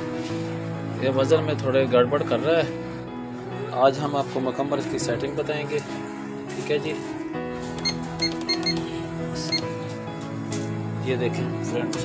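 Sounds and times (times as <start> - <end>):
background music: 0.0 - 12.0
short electronic beeps: 7.8 - 8.8.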